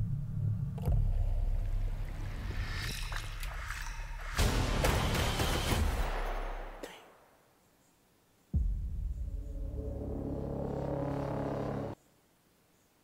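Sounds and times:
deep boom: 8.6 - 10.2
low droning chord: 8.6 - 12.0.

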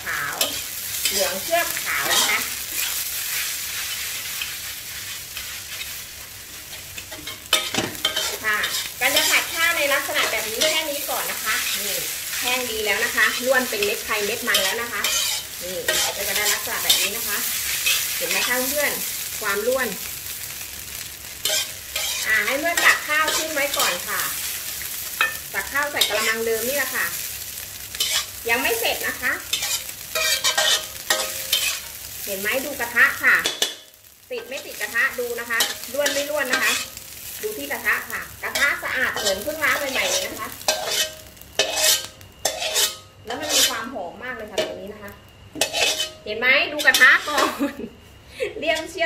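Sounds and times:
rice sizzling in wok: 0.0 - 49.0
metal spatula scraping wok: 0.1 - 19.7, 21.4 - 27.2, 27.9 - 33.8, 34.4 - 43.9, 45.6 - 47.5.

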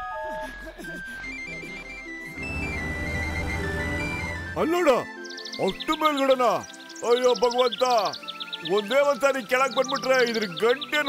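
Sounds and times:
simple electronic melody: 1.1 - 5.5.

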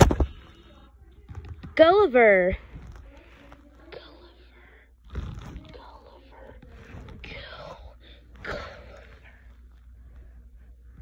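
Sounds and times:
steady low hum: 0.0 - 11.0
faint whispered speech: 2.7 - 11.0.

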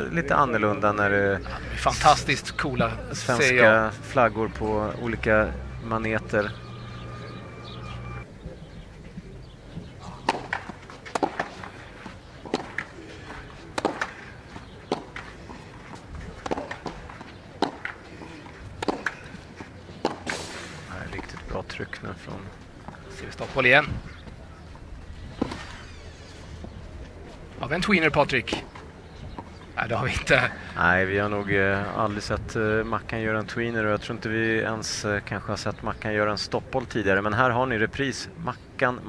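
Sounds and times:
faint outdoor background: 0.0 - 39.0
tennis ball strike: 10.2 - 13.0, 13.7 - 15.3, 16.3 - 19.4, 20.0 - 20.6.

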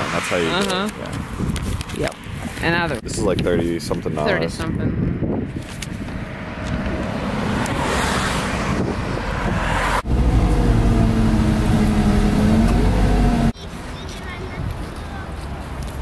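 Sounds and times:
faint street noise: 0.0 - 16.0
bus engine rumble with whine: 8.7 - 13.6.

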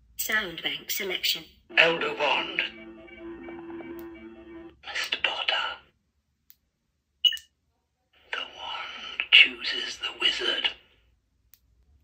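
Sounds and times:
whispered voice effects: 1.7 - 2.8, 4.8 - 5.9, 8.2 - 10.9
held musical chord: 1.7 - 4.8.

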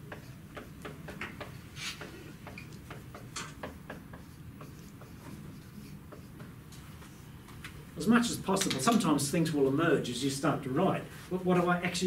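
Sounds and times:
marker writing on whiteboard: 0.0 - 7.3.

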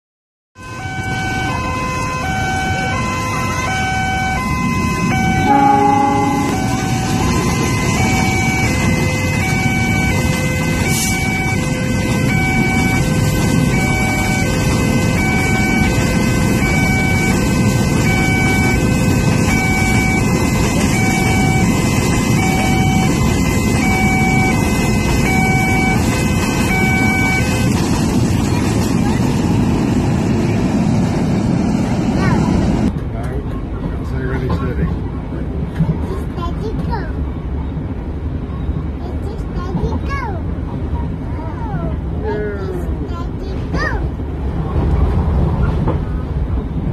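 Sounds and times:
railway crossing alarm: 0.6 - 30.8
freight train rumbling: 0.6 - 46.9
voices: 31.9 - 44.8.

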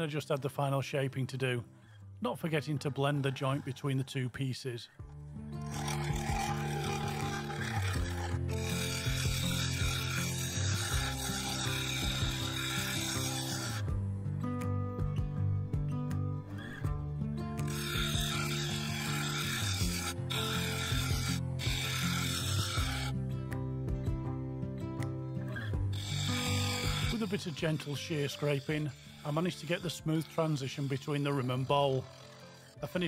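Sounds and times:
background music: 0.0 - 33.0
lathe gouge scraping wood: 5.6 - 14.0, 17.6 - 23.1, 25.6 - 33.0.

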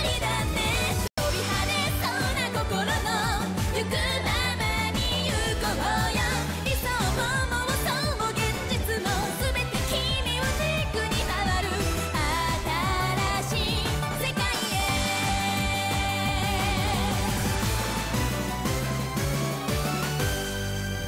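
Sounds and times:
pop song with singer and band: 0.0 - 18.9.

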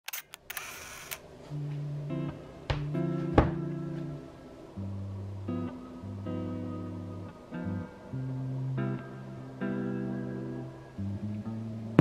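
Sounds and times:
sharp clicks: 0.0 - 1.2
music with low held notes: 1.3 - 12.0.

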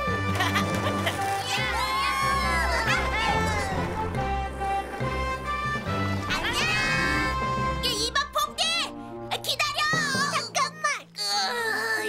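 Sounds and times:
background music: 0.0 - 12.0
cartoon children whooping and cheering: 1.4 - 4.0, 6.3 - 7.4.

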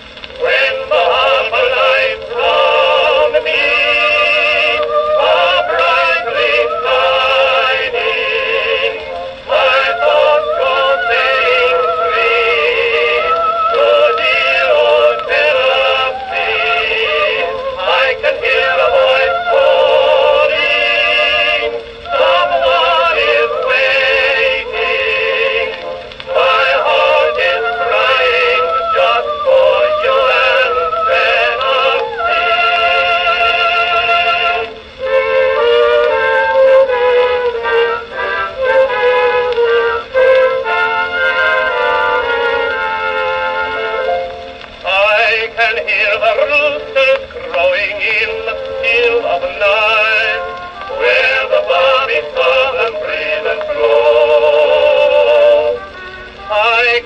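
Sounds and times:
early acoustic recording on phonograph: 0.0 - 57.0.

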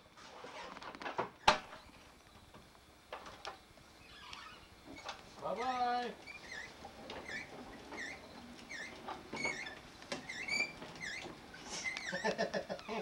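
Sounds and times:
short high squeaks: 4.0 - 12.4.

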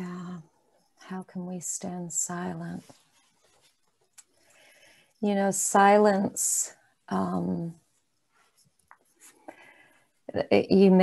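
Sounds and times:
soft faint rustling: 1.8 - 5.3, 7.7 - 10.3.

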